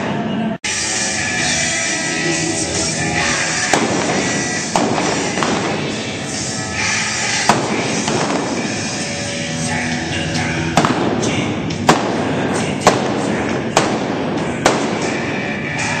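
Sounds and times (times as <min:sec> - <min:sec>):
background music: 0:00.0 - 0:16.0
revolver shots: 0:03.2 - 0:09.0, 0:10.6 - 0:15.5.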